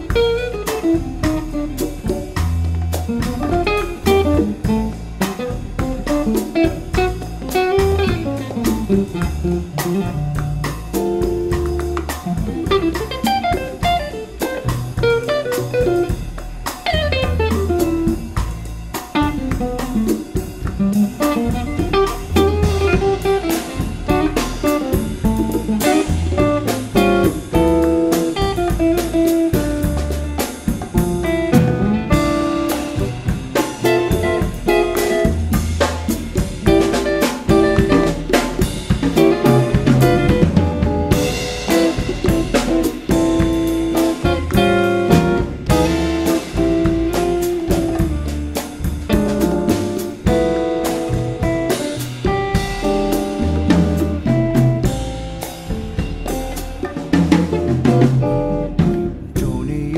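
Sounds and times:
acoustic bass: 0.0 - 59.9
drum kit: 0.0 - 59.9
hand percussion: 0.0 - 59.9
jazz guitar: 0.0 - 59.9.

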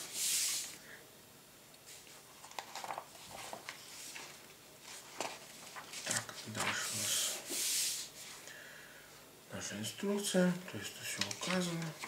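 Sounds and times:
paper page rustling: 1.9 - 8.1, 11.1 - 12.0.

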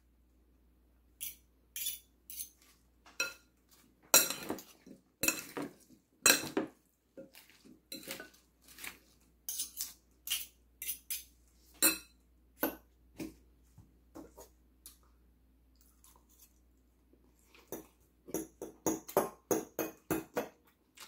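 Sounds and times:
fork scraping and clinking in bowl: 1.2 - 3.5, 4.1 - 6.6, 7.2 - 12.2.

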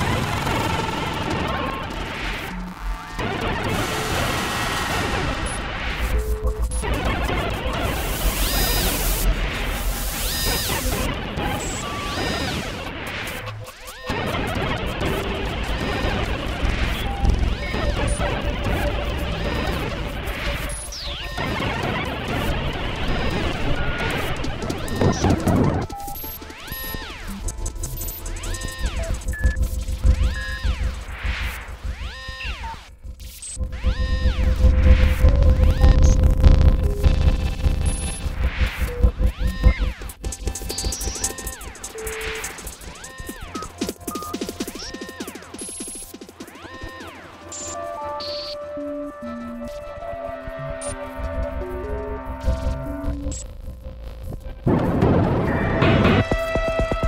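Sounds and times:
electronic noise music: 0.0 - 57.0
electronic chirps: 15.6 - 57.0.

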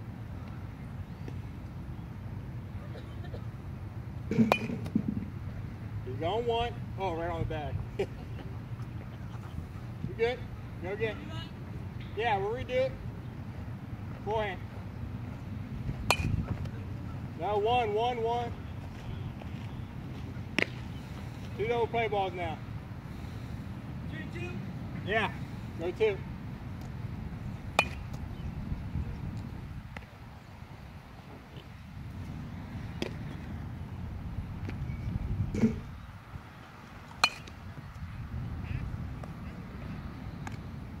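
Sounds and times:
baseball bat hitting ball: 4.3 - 5.3, 16.0 - 16.7, 20.6 - 20.8, 27.7 - 28.2, 37.2 - 37.6
low wind rumble: 12.7 - 41.0.

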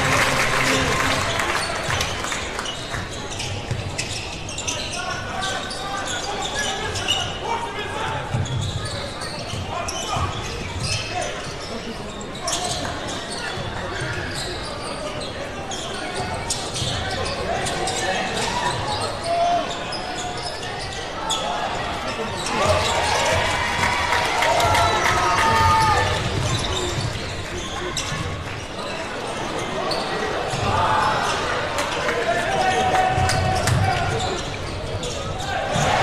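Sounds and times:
indistinct crowd voices: 0.0 - 36.0.

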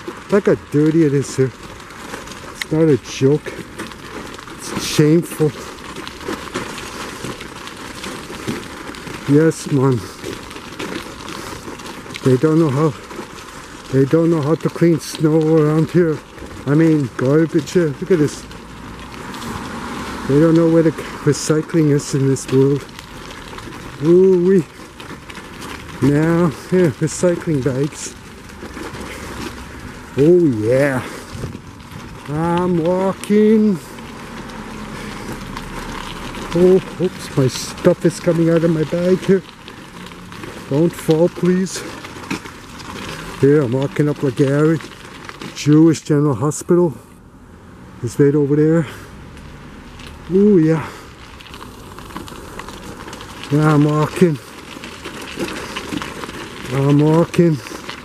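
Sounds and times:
footsteps on slushy sidewalk: 0.0 - 58.0
outdoor noise walking in snow: 0.0 - 58.0.

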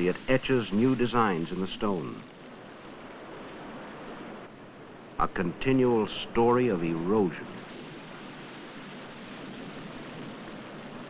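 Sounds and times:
waves breaking over rocks: 0.0 - 11.0.

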